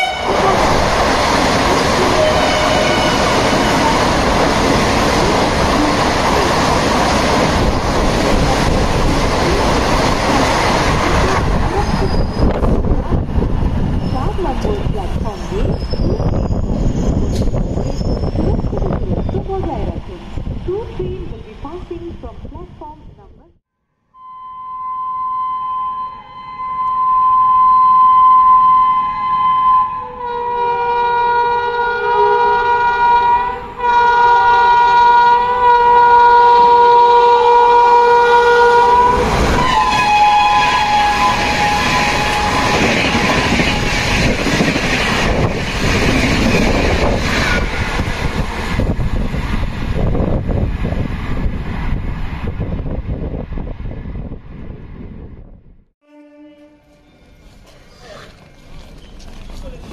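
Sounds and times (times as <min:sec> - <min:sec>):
lower train horn tone: 0:00.0 - 0:00.8, 0:02.0 - 0:04.4, 0:24.2 - 0:44.5, 0:56.0 - 0:58.2
train horn blast: 0:00.0 - 0:00.8, 0:02.0 - 0:04.4, 0:24.2 - 0:44.4, 0:56.0 - 0:57.4
train rushing past: 0:00.0 - 0:23.2, 0:35.8 - 0:55.7.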